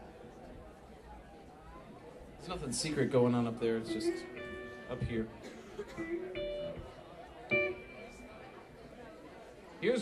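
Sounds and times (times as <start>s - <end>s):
murmur of club room: 0.0s - 10.0s
guitar note plucked: 3.9s - 8.5s.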